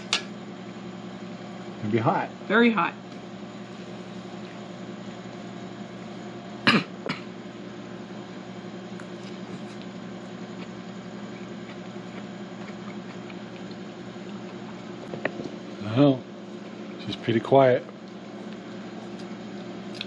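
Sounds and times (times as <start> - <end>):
low household hum: 0.0 - 20.0
person coughing: 6.6 - 7.3.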